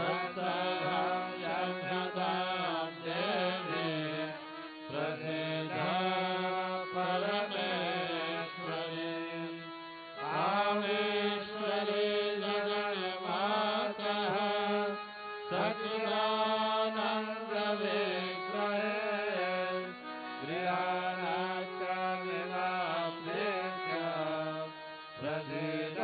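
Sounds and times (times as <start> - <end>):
devotional chanting: 0.0 - 26.0.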